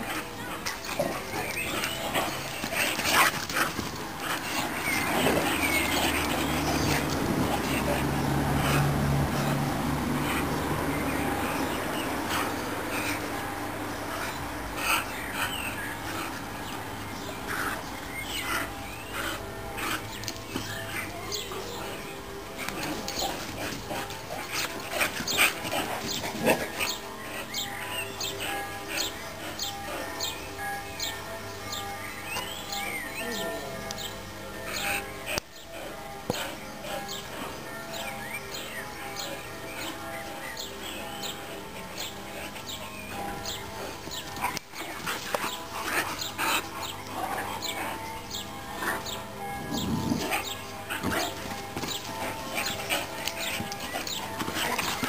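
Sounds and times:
dogs vocalizing in play: 0:00.0 - 0:31.2, 0:32.2 - 0:55.0.

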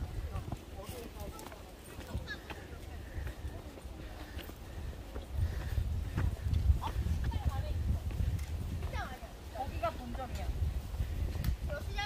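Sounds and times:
faint voices: 0:00.0 - 0:12.0
footsteps on hard path: 0:00.0 - 0:12.0.

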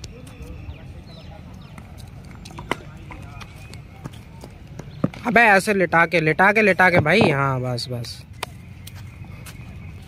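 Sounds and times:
footsteps on brick paving: 0:00.0 - 0:05.6, 0:06.6 - 0:10.0
faint voices: 0:00.0 - 0:08.4.

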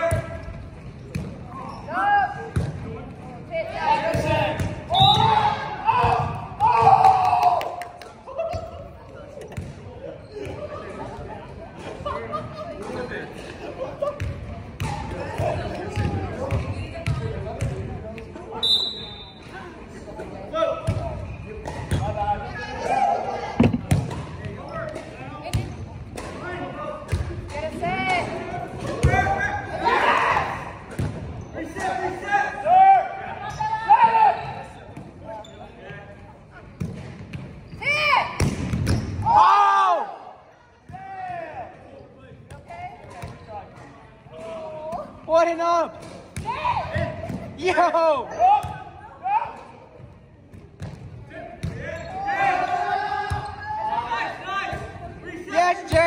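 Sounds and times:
players shouting: 0:03.6 - 0:07.8, 0:28.9 - 0:30.8, 0:39.2 - 0:41.8, 0:51.8 - 0:56.0.

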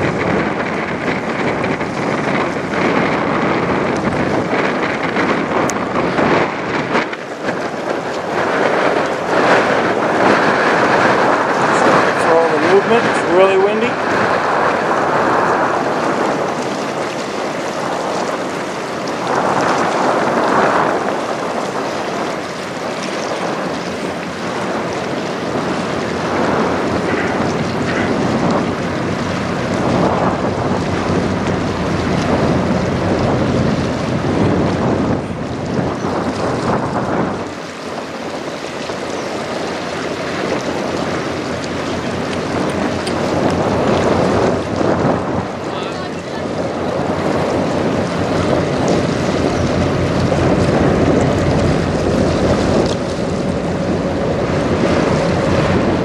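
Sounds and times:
choppy river water: 0:00.0 - 0:56.0
wind on microphone: 0:00.0 - 0:56.0.

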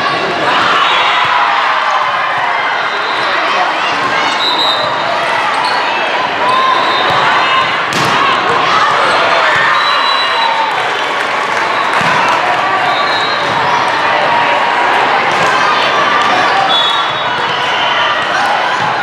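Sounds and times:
players and spectators shouting: 0:00.0 - 0:19.0
volleyballs hit and bouncing: 0:06.4 - 0:09.8, 0:10.7 - 0:19.0.

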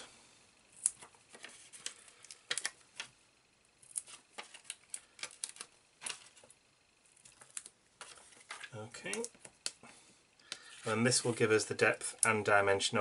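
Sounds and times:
card and foam pads handled: 0:00.8 - 0:03.2, 0:03.8 - 0:09.8.

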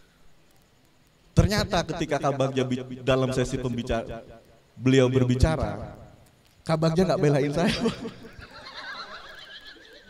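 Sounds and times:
person speaking: 0:01.4 - 0:04.1, 0:06.6 - 0:08.2
person laughing: 0:07.6 - 0:10.0.

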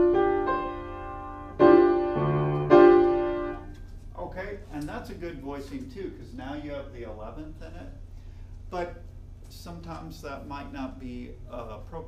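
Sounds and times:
low piano bass note: 0:00.0 - 0:03.8
piano chord ringing: 0:00.0 - 0:03.8.

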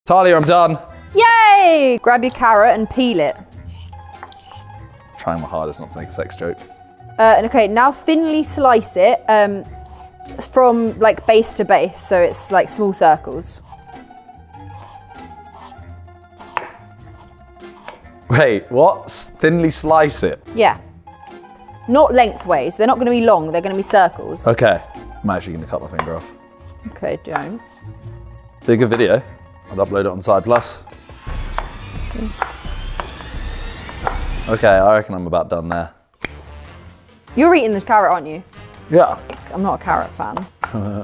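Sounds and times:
background music with plucked strings: 0:00.1 - 0:41.0
knife cutting carrot on wooden board: 0:03.6 - 0:04.8, 0:13.6 - 0:14.0, 0:14.7 - 0:15.8, 0:16.4 - 0:18.1, 0:31.5 - 0:34.3.

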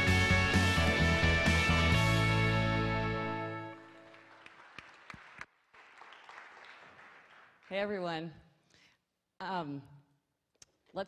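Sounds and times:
audience applause: 0:03.9 - 0:07.7.

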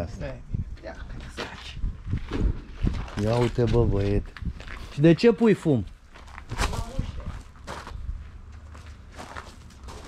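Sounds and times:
footsteps on grass and dirt: 0:05.9 - 0:10.0.

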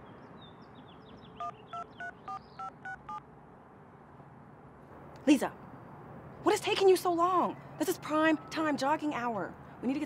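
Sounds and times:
telephone keypad beeps: 0:01.4 - 0:03.2.

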